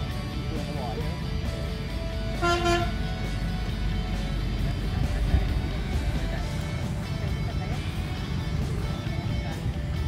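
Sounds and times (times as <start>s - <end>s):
background music: 0.0s - 10.0s
low traffic rumble: 0.0s - 10.0s
short vehicle horn toot: 2.4s - 2.9s.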